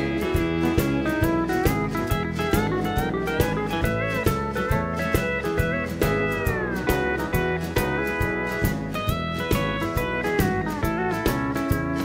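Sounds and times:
country band playing: 0.0s - 12.0s
steel guitar sliding down: 0.0s - 12.0s.

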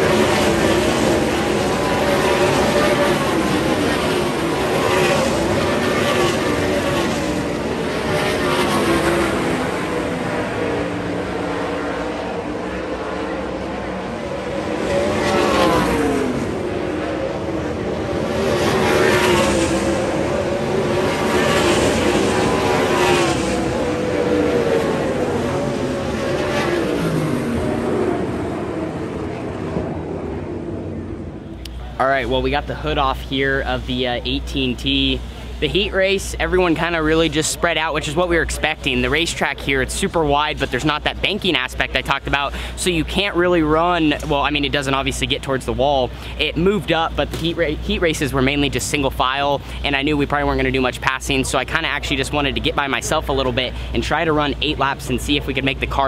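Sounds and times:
race car engines passing: 0.0s - 56.0s.

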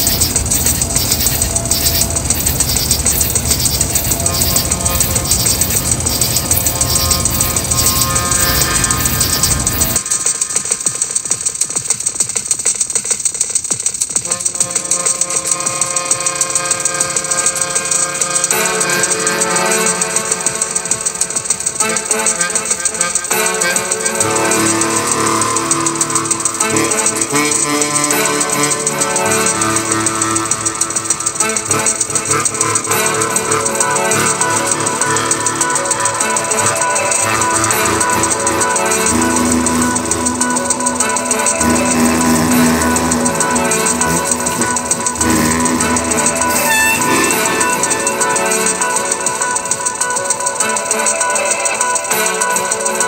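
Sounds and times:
sustained synthesizer tones: 0.0s - 13.2s, 13.8s - 53.0s
fast high ticking pattern: 0.0s - 53.0s
fast rattling electronic pulse: 0.0s - 53.0s.

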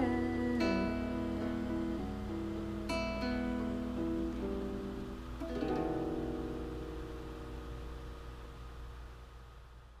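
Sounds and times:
acoustic guitar chord ringing: 0.0s - 9.8s
steady low hum: 0.0s - 10.0s.

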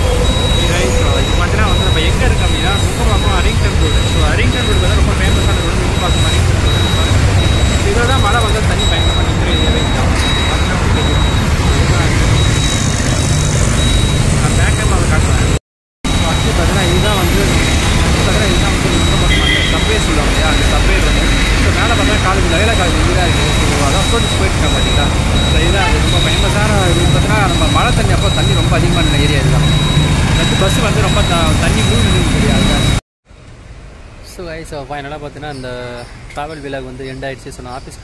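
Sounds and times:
motorcycle road noise: 0.0s - 33.0s.

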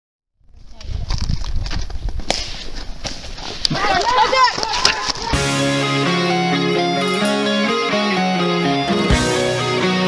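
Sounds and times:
people yelling: 3.7s - 5.6s.

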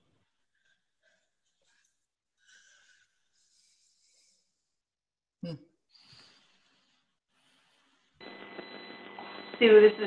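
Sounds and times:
faint high whine: 8.2s - 10.0s
phone line hiss: 8.2s - 10.0s.

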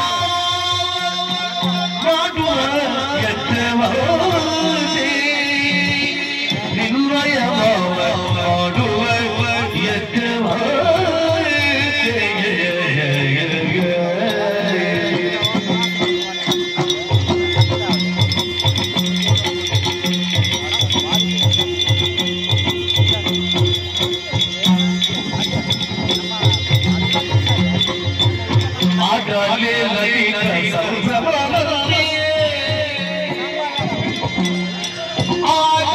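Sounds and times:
drum beating: 0.0s - 35.9s.

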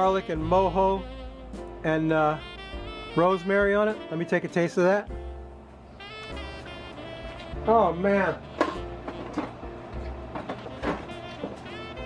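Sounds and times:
jazz music with horns: 0.0s - 12.0s.

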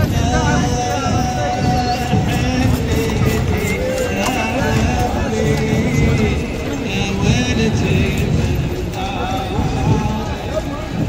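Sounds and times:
horse hooves clip-clopping on pavement: 0.0s - 11.0s
loud voices: 0.0s - 11.0s
music: 0.0s - 11.0s.

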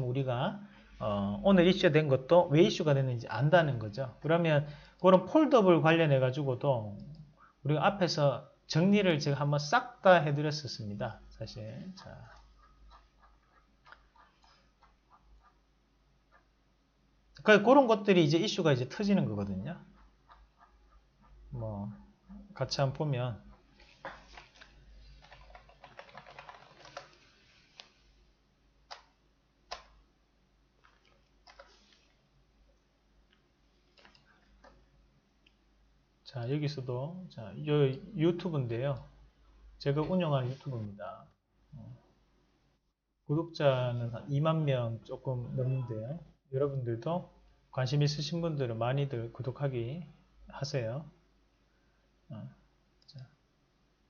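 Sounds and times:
keyboard and mouse clicks: 11.9s - 15.6s, 24.0s - 27.2s, 28.9s - 30.0s, 30.8s - 32.0s.

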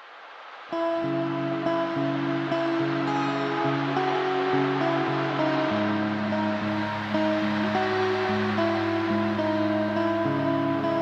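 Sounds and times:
slow doom metal guitar: 0.7s - 11.0s.

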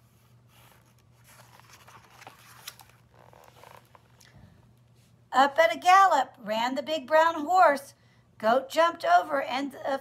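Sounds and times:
paper rustling: 0.5s - 4.2s
light clicks of book handling: 0.6s - 5.1s.

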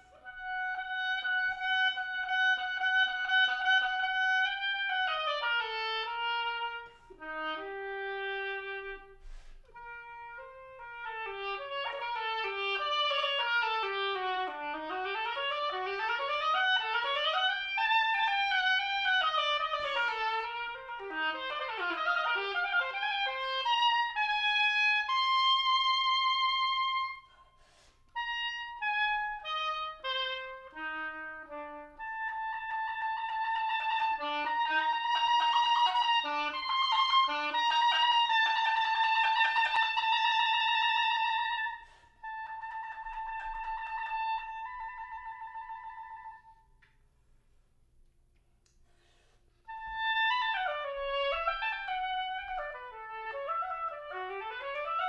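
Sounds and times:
solo oboe playing: 0.0s - 47.0s, 48.6s - 55.0s.

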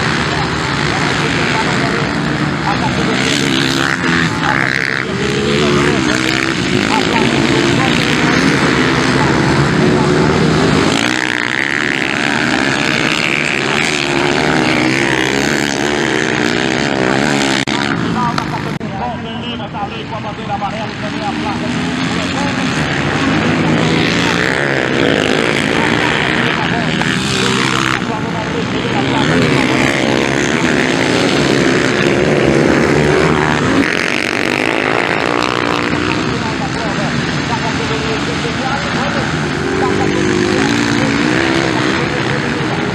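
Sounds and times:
motocross bike engines revving: 0.0s - 42.9s.

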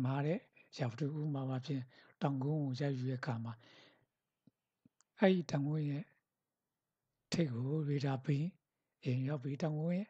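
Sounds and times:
person speaking: 0.0s - 3.8s, 4.9s - 6.3s, 7.3s - 10.0s.

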